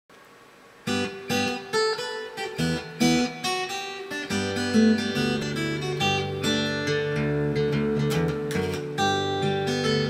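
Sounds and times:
faint hiss: 0.1 - 10.0
fingerstyle acoustic guitar: 0.8 - 10.0.

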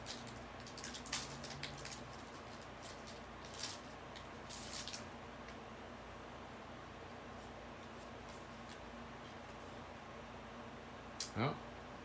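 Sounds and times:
foil wrapper crinkling: 0.0 - 5.1.

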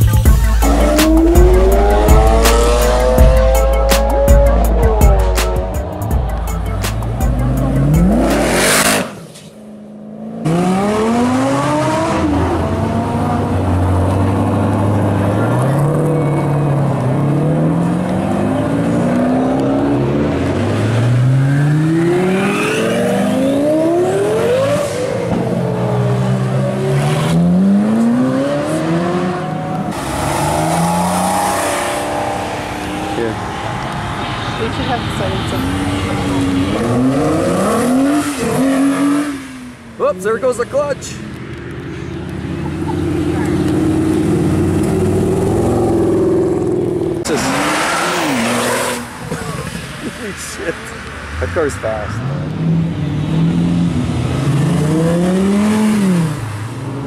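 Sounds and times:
spectators talking: 0.0 - 9.5, 13.0 - 23.6, 31.9 - 52.3
car engines revving and accelerating: 0.0 - 57.0.

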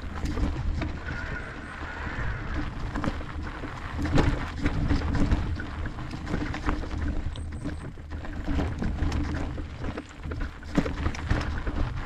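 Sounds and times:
bike rattling over bumps: 0.0 - 12.0
tyre rumble on dirt trail: 0.0 - 12.0
wind rumble on microphone: 0.0 - 12.0.

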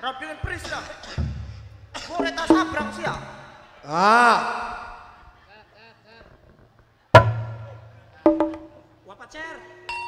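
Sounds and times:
gamelan drum stroke: 2.1 - 3.6, 7.2 - 8.8.

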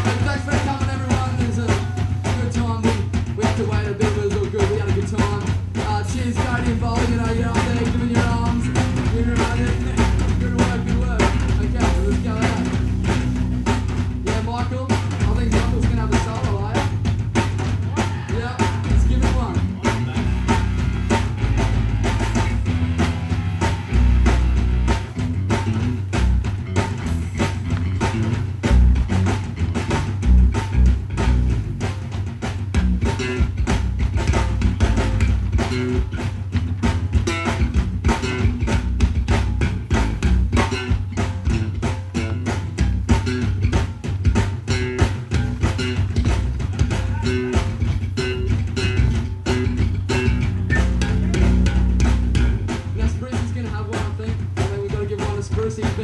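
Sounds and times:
electric guitars: 0.0 - 53.5
drum kit fast beat: 0.0 - 56.0
electric bass: 0.0 - 56.0.

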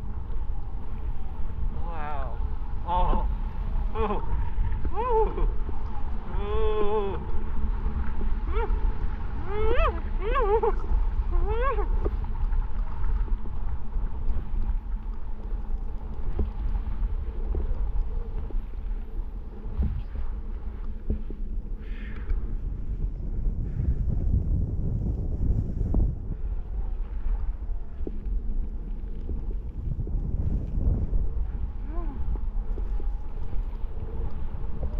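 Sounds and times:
wind buffeting microphone: 0.0 - 34.9.

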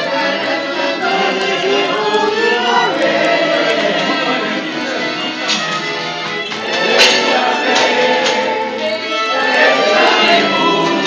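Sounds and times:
accordion: 0.0 - 11.0
violin: 0.0 - 11.0.

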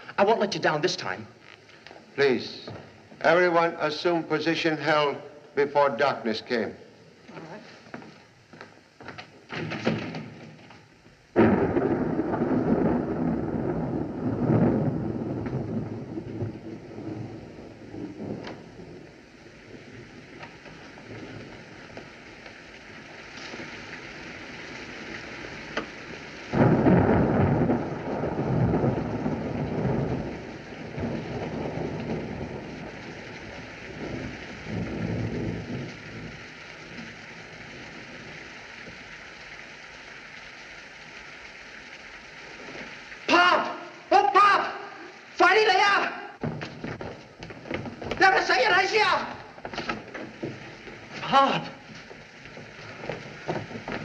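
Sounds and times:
steady rain: 0.0 - 54.0
thunder claps rolling: 9.4 - 39.1, 42.6 - 54.0.

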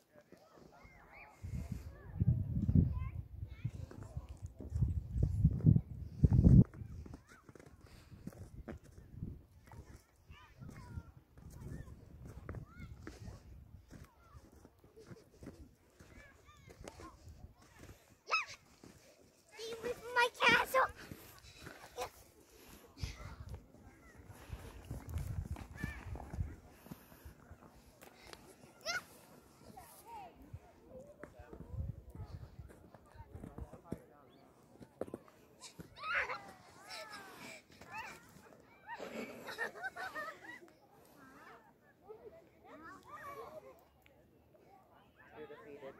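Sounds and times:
children calling and shouting: 5.8 - 33.5, 35.0 - 45.6.

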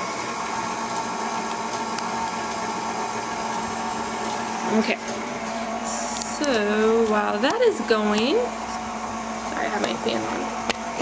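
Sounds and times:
electric mixer whisking batter: 0.0 - 11.0.

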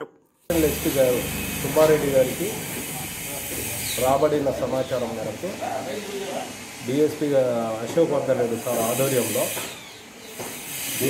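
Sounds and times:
man talking: 0.0 - 6.1.

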